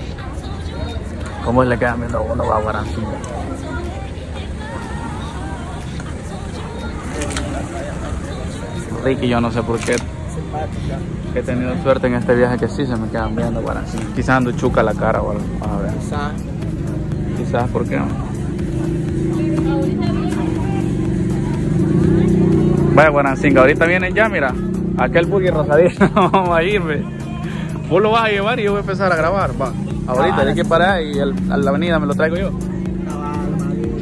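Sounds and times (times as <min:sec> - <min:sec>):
background chatter: 0:00.0 - 0:34.0
faint indistinct voices: 0:00.0 - 0:34.0
low street rumble: 0:00.0 - 0:34.0.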